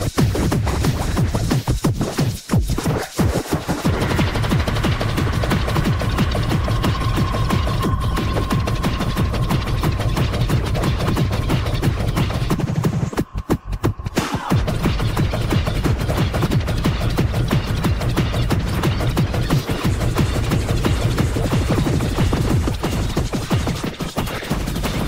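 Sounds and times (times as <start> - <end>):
heavy bass: 0.0 - 24.0
distorted kick drums: 0.0 - 25.0
hardcore electronic track: 0.0 - 25.0
held synth tone: 5.7 - 12.1.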